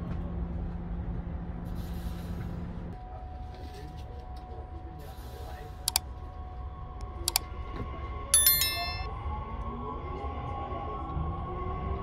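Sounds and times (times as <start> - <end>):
bright bell ding: 8.4 - 9.1.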